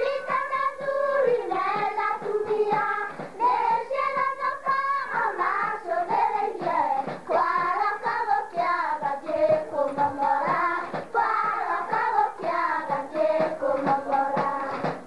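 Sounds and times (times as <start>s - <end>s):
girls singing together: 0.0s - 15.0s
steady rhythmic beat: 0.0s - 15.0s.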